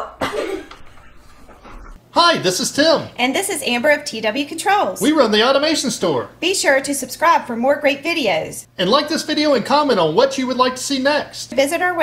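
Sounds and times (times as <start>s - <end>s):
person coughing: 0.0s - 0.9s.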